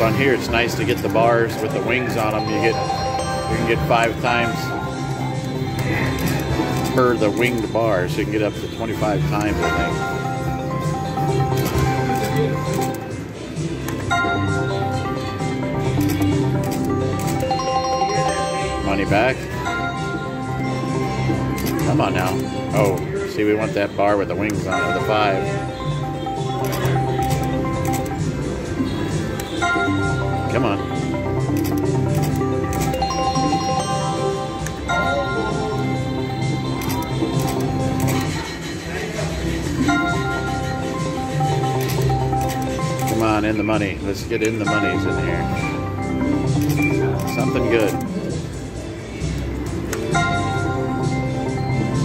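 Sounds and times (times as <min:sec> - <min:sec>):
slot machine electronic jingles: 0:00.0 - 0:10.4, 0:16.7 - 0:23.0, 0:24.2 - 0:28.2, 0:31.8 - 0:38.5, 0:46.6 - 0:48.0.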